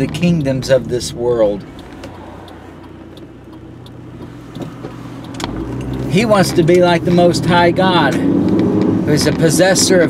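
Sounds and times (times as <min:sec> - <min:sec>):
car engine and road noise: 0:00.0 - 0:10.0.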